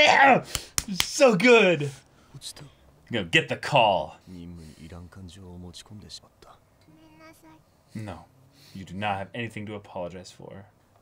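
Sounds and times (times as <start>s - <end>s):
person whispering: 6.0s - 6.6s.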